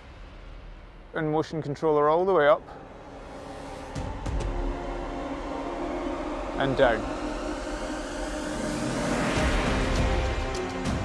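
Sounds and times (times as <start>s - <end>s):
drone propellers whirring: 2.7s - 11.0s.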